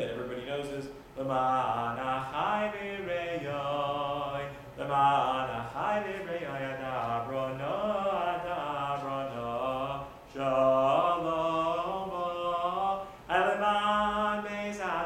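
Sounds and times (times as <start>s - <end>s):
man singing unaccompanied: 0.0s - 15.0s.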